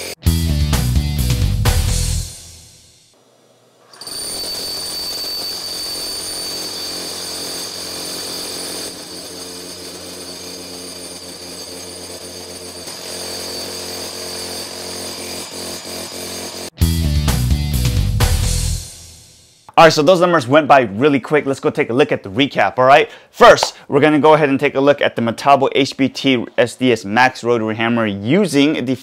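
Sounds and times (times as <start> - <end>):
rotary hammer drilling whine: 0.0 - 0.4, 2.9 - 16.7
music: 0.0 - 3.1, 16.8 - 19.7.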